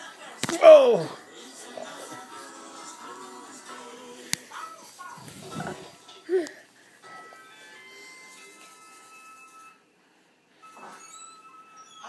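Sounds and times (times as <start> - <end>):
television music with held tones: 0.0 - 12.0.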